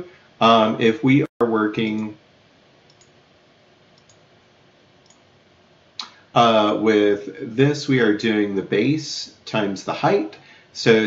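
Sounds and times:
faint computer mouse clicks: 2.9s - 3.2s, 4.0s - 4.2s, 5.0s - 5.2s.

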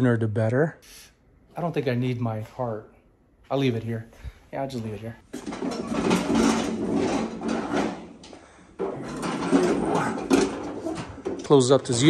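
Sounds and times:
wagon rolling on concrete: 5.3s - 12.0s.

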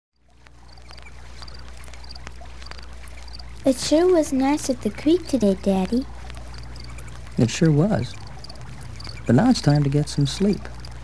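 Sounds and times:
faint high chirps: 0.2s - 11.0s
steady low hum: 0.2s - 11.0s
vinyl crackle and clicks: 0.2s - 11.0s.

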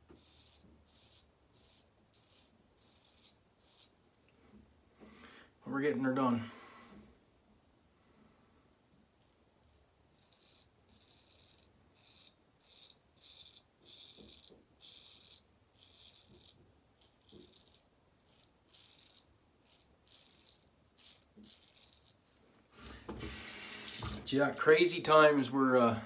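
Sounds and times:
straight razor scraping stubble: 0.0s - 4.0s, 9.2s - 22.4s.

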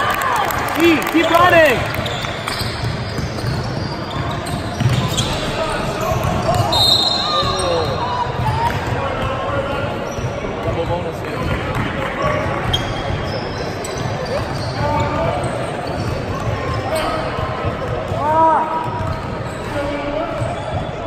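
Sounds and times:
spectators chattering in a hall: 0.0s - 21.0s
basketball bouncing on hardwood floor: 2.5s - 5.0s.

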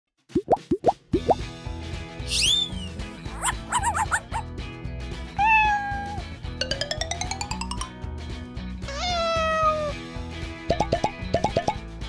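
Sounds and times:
rising pop sounds: 0.3s - 1.4s, 10.7s - 11.8s
swooping whistle: 2.3s - 4.4s
upbeat music with steady beat: 10.6s - 12.0s.

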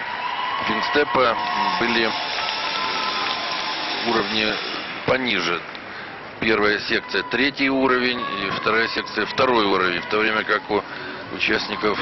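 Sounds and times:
audience applauding: 0.0s - 5.8s.

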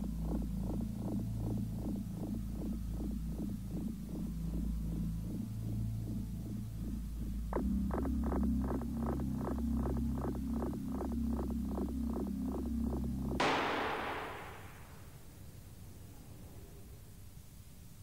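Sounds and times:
tense music with low drone: 0.0s - 14.8s
airbag bang: 13.4s - 15.0s.

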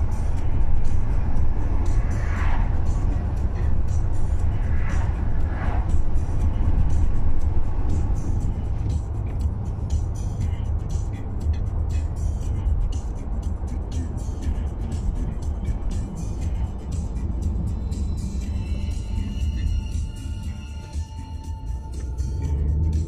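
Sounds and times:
car engine and tyre rumble: 0.0s - 23.0s
music on car radio: 0.0s - 23.0s.

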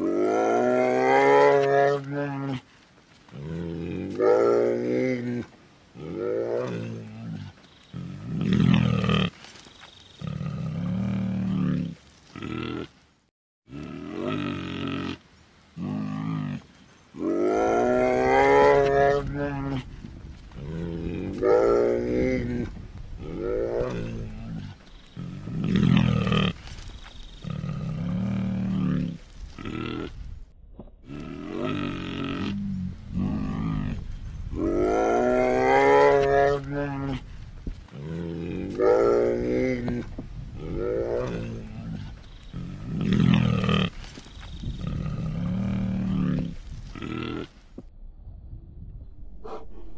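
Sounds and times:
bear grunting and roaring: 0.0s - 2.7s, 3.3s - 9.4s, 10.2s - 13.0s, 13.7s - 15.2s, 15.8s - 30.4s, 31.0s - 47.9s, 49.2s - 49.9s.

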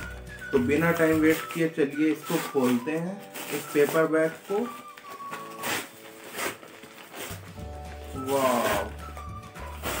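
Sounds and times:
paper bag rustling: 0.0s - 10.0s.

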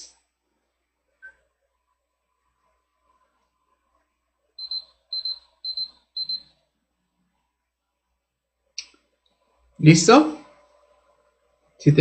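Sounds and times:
electronic timer beeping: 4.6s - 6.6s.

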